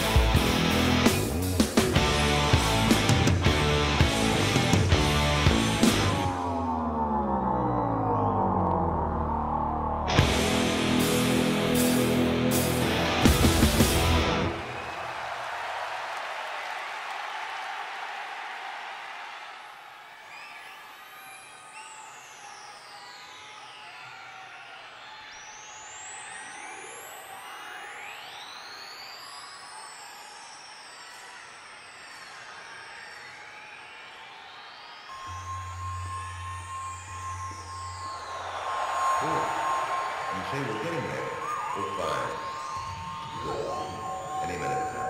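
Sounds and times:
rock song: 0.0 - 6.3, 10.1 - 14.6
crowd cheering and applauding: 0.0 - 45.0
sweeping electronic tones: 20.6 - 45.0.

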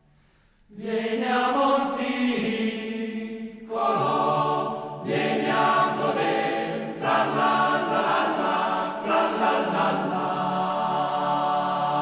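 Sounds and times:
choir singing a cappella: 0.7 - 12.0.

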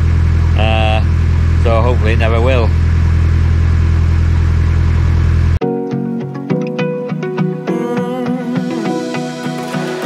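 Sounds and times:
diesel engine droning: 0.0 - 5.6
music with plucked notes: 5.6 - 10.0.

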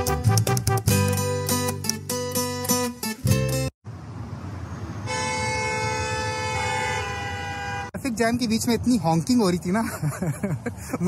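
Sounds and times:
stationary traffic rumble: 0.1 - 11.0
car horns honking: 5.0 - 8.0.

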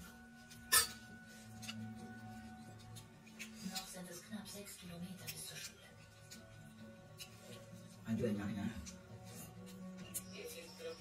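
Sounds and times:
metal spoon clinking ceramic bowl: 0.6 - 1.8.

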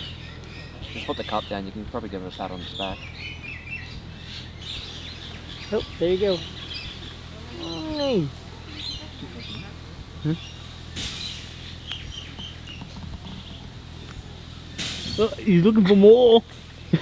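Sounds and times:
small birds chirping: 0.0 - 17.0.

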